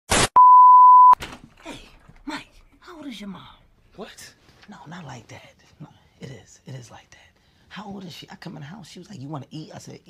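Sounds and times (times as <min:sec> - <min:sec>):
steady bleep tone: 0:00.4 - 0:01.2.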